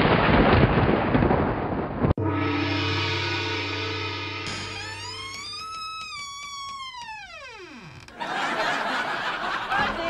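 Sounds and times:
music: 2.2s - 5.9s
whistle-like falling tone: 2.2s - 7.5s.

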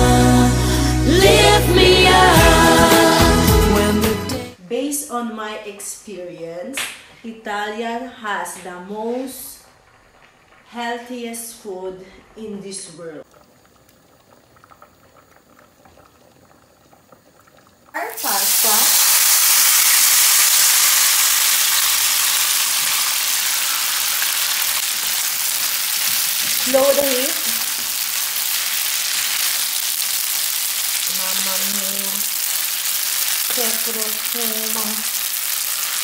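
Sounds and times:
pasta sizzling in a frying pan: 9.4s - 12.6s, 13.2s - 36.0s
water boiling and bubbling: 9.6s - 10.9s, 11.6s - 36.0s.

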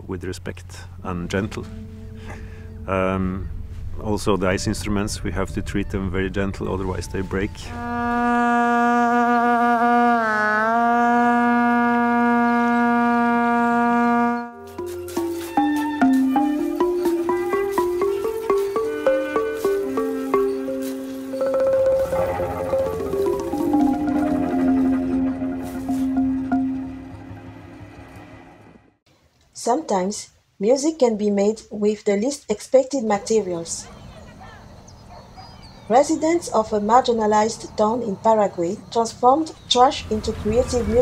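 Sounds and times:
bowed cello low note: 1.0s - 14.6s.

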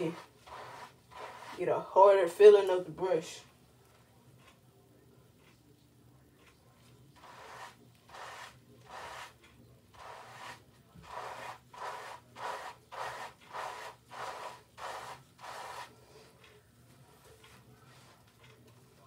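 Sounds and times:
brush scrubbing lathered hair: 0.0s - 1.9s, 7.2s - 16.0s.

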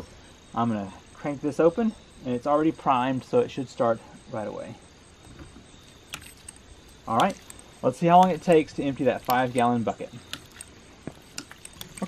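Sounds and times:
ram pump valve clicking: 7.2s - 12.0s.

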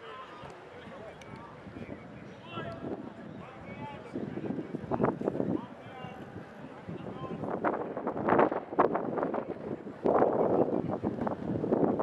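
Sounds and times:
gusty wind on microphone: 0.8s - 12.0s.

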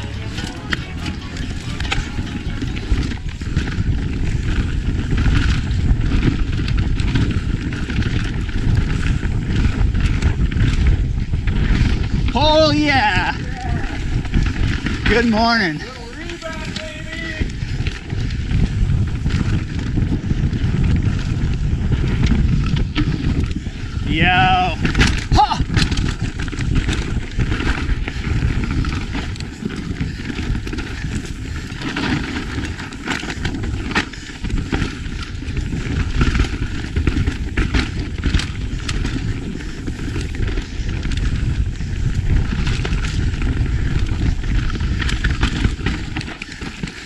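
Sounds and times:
bike rattling over bumps: 0.0s - 47.0s
bike tyres rumbling over dirt: 0.0s - 47.0s
wind on microphone: 0.0s - 47.0s.

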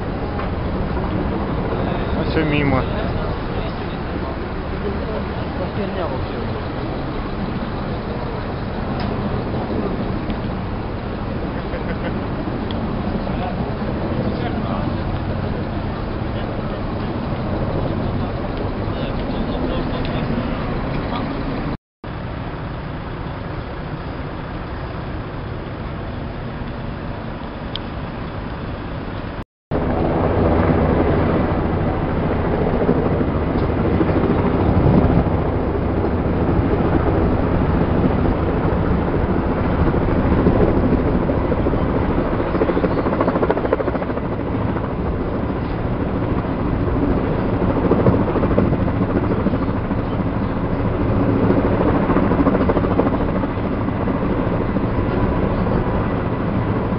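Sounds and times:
helicopter flying overhead: 0.0s - 56.9s.

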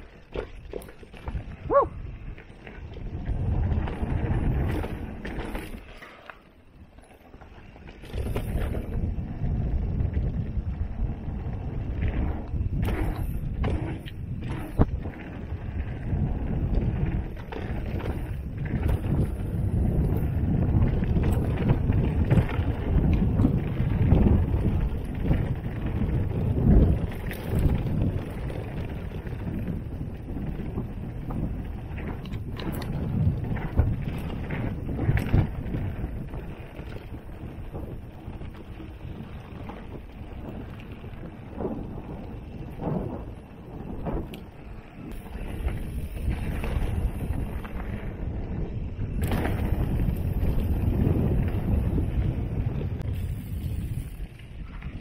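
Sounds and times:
wind rushing on microphone: 0.0s - 5.9s, 7.6s - 55.0s
bike rattling over bumps: 0.0s - 55.0s
bike tyres on dirt: 0.0s - 55.0s.

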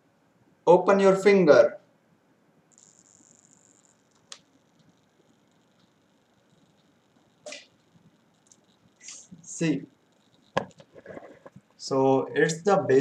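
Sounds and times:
click: 3.8s - 5.1s.

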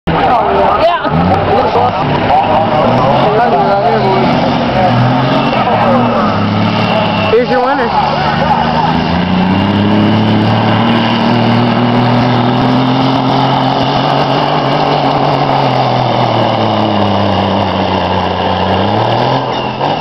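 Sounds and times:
truck diesel engine running: 0.1s - 20.0s.

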